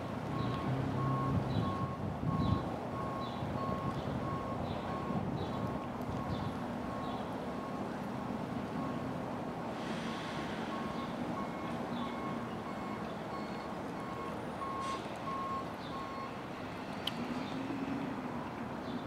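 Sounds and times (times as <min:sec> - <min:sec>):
truck engine drone: 0:00.0 - 0:18.7
truck reversing alarm beeping: 0:00.3 - 0:05.2, 0:06.2 - 0:07.8, 0:10.1 - 0:16.5.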